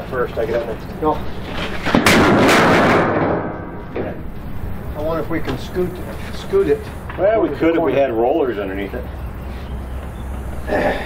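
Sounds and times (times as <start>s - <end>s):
steel plate crashing onto timber: 1.9s - 4.2s.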